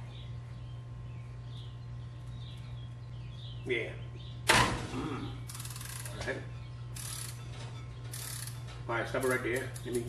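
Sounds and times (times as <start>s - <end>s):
ratchet wrench clicking: 5.5s - 6.2s, 7.0s - 7.4s, 8.1s - 8.6s.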